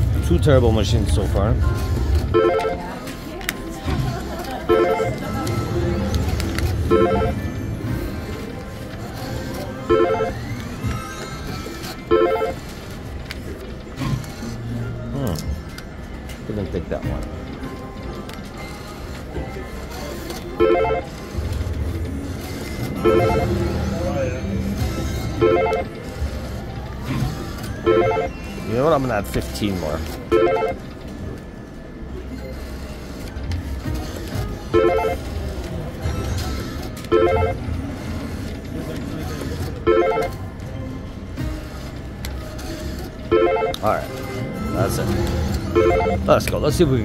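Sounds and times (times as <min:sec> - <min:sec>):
background chatter: 0:00.0 - 0:47.0
slot machine chimes and jingles: 0:01.1 - 0:03.0, 0:04.5 - 0:06.0, 0:06.7 - 0:08.5, 0:09.6 - 0:12.8, 0:20.5 - 0:21.1, 0:22.7 - 0:26.3, 0:27.7 - 0:29.3, 0:30.2 - 0:31.3, 0:34.7 - 0:35.4, 0:37.1 - 0:37.8, 0:39.8 - 0:40.6, 0:43.3 - 0:47.0.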